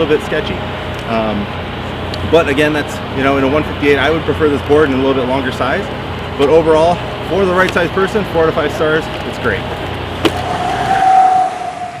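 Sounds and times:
outdoor background noise: 0.0s - 12.0s
steady tone: 10.2s - 12.0s.

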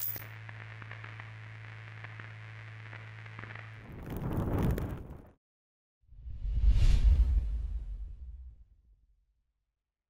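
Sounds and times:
steady low hum: 0.0s - 3.8s
faint scattered crackles: 0.0s - 5.4s.

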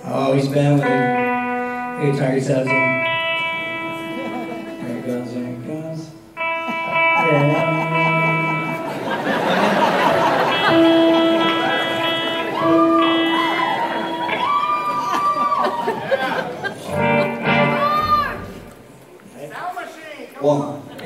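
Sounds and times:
electric guitar and keyboard chords: 0.4s - 15.1s, 16.7s - 18.8s
person singing: 0.8s - 9.0s.

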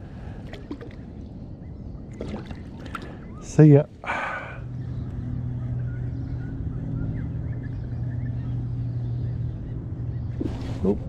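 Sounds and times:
birds chirping: 0.1s - 11.0s.

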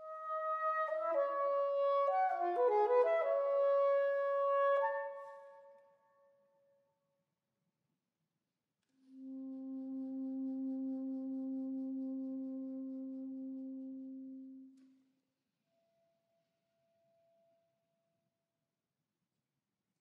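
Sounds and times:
soprano saxophone notes: 9.0s - 14.9s.

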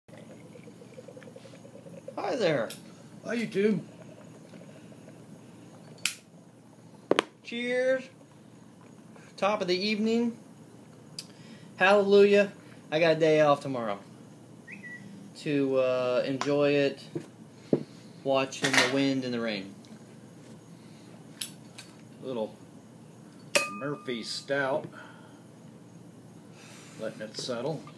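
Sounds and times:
lighter clicks: 6.0s - 6.2s.

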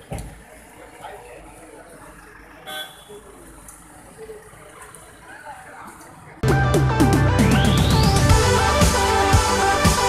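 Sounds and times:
street and crowd noise: 0.0s - 10.0s
vehicle horn toot: 2.7s - 3.2s.

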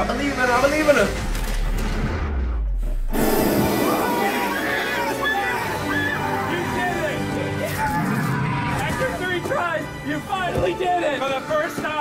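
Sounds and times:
loud rush of noise: 3.1s - 5.9s.

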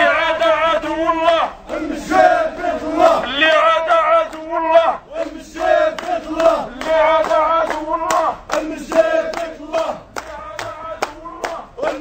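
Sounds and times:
person leading through a megaphone: 0.0s - 2.1s, 2.9s - 5.2s
crowd of men chanting: 0.0s - 12.0s.

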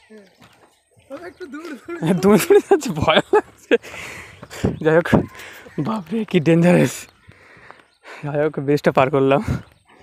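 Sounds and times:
man talking: 1.1s - 3.4s, 4.6s - 7.1s.

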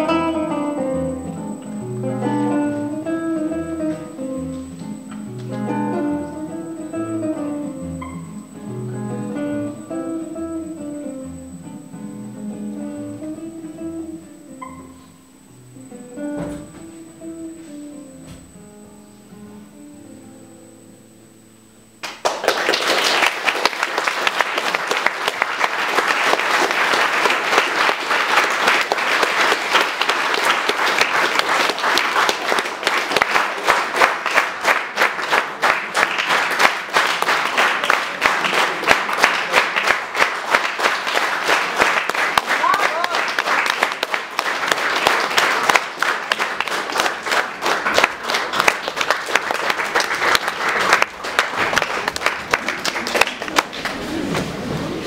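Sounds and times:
audience applauding: 22.0s - 54.0s.

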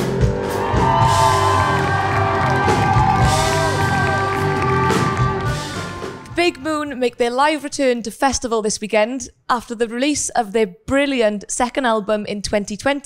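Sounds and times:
rock band playing: 0.0s - 6.8s
crowd cheering and whooping: 0.2s - 6.2s.

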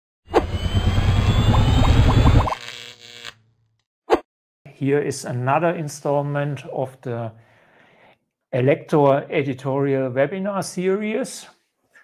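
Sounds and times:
rising whine: 0.3s - 3.3s.

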